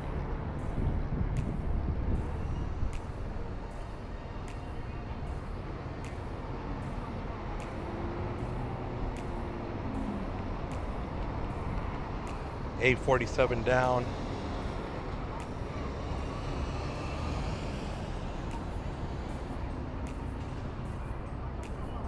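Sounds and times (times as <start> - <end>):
traffic rumble: 0.0 - 22.0.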